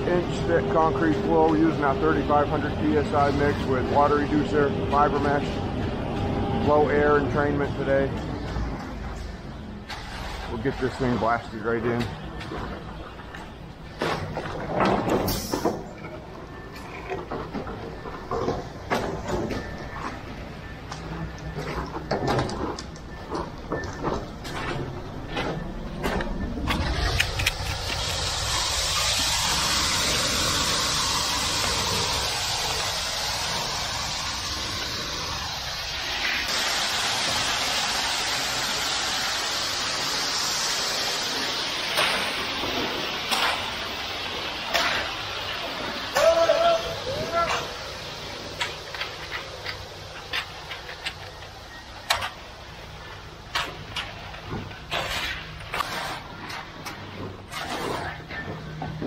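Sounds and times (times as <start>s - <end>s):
concrete running down metal chute: 0.0s - 5.6s, 9.9s - 12.2s, 26.8s - 59.0s
rakes and shovels scraping concrete: 9.9s - 12.1s, 41.9s - 43.9s, 44.7s - 47.7s, 53.5s - 58.5s.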